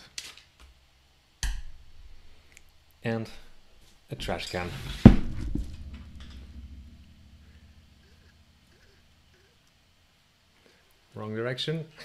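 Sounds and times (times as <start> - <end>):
low ringing: 3.5 - 9.3
objects thumping on tabletop: 4.2 - 6.4.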